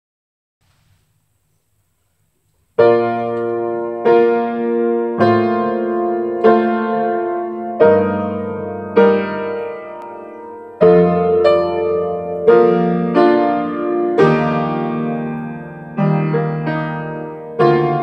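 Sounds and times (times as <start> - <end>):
slow piano chords: 2.7 - 18.0.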